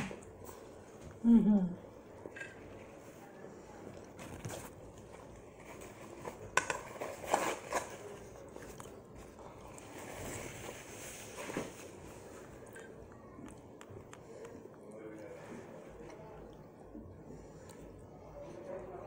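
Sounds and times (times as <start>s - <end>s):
people chewing: 0.0s - 11.3s, 11.9s - 19.0s.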